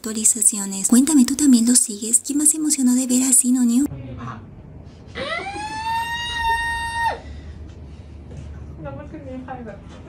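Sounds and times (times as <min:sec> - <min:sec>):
low background hum: 0:00.0 - 0:10.0
high-pitched wail: 0:05.2 - 0:07.3.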